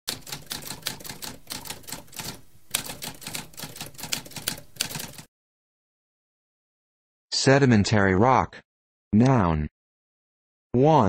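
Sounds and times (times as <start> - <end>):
typewriter keystrokes clacking: 0.1 - 5.3.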